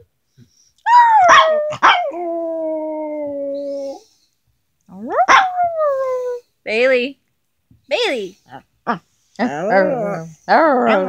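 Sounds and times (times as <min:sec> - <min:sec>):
small dog howling: 0:00.8 - 0:04.0, 0:09.8 - 0:11.0.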